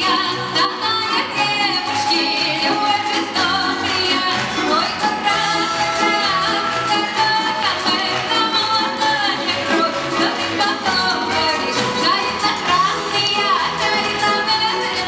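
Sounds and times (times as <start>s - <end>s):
folk string ensemble: 0.0s - 15.0s
woman singing folk song: 0.0s - 15.0s.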